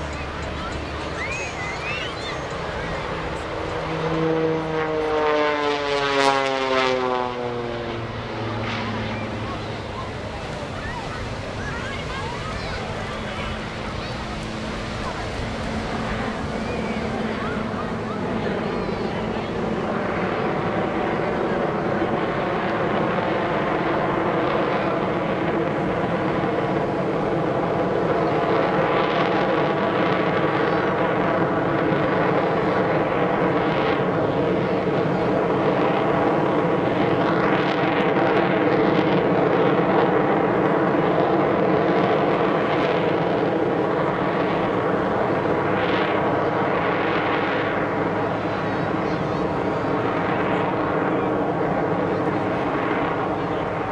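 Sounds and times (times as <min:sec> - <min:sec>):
airplane engine and propeller drone: 0:00.0 - 0:53.9.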